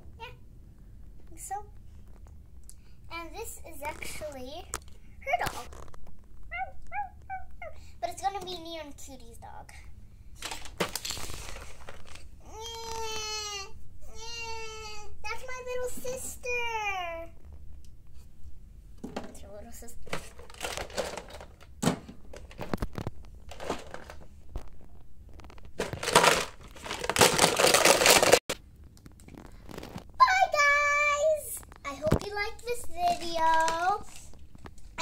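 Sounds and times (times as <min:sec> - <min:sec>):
toys rustling: 0:03.2 - 0:08.7, 0:10.4 - 0:13.6, 0:19.0 - 0:28.5, 0:29.2 - 0:35.0
plastic crinkling and rattling: 0:03.8 - 0:06.5, 0:10.4 - 0:13.1, 0:20.0 - 0:30.2, 0:31.5 - 0:35.0
child making whining calls: 0:12.4 - 0:15.2.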